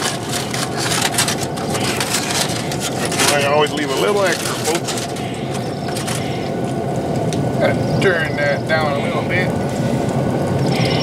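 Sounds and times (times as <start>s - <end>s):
aluminium foil crinkling: 0.0s - 7.4s.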